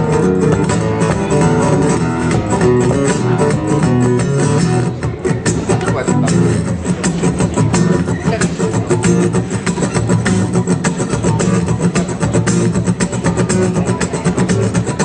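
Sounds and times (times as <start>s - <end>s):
blues guitar: 0.0s - 15.0s
steady beat: 0.0s - 15.0s.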